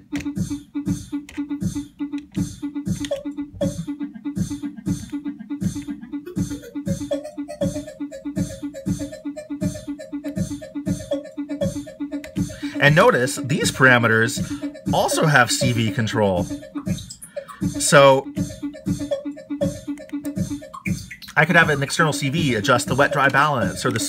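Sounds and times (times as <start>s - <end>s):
beatboxed drum loop: 0.0s - 24.0s
pitched delay echoes: 2.4s - 24.0s.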